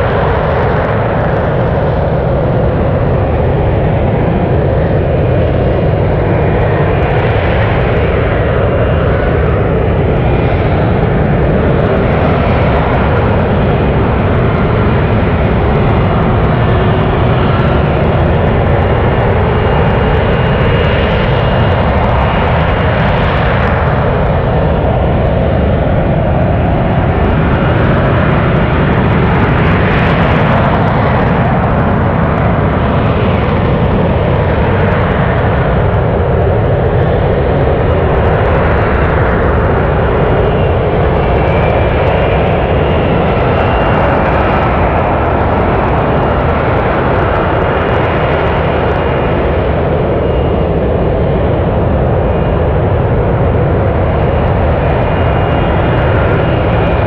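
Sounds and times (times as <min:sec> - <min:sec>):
jet engine running loud: 0:00.0 - 0:57.0.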